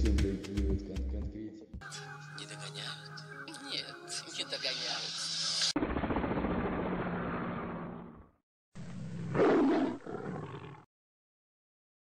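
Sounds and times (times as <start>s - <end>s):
roar-like rumble sound effect: 5.8s - 9.5s.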